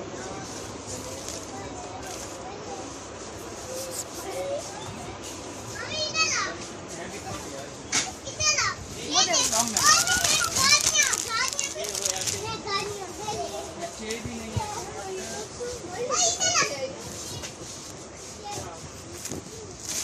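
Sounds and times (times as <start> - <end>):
children calling and squealing: 0.0 - 6.9, 8.0 - 20.0
murmur of voices: 0.0 - 20.0.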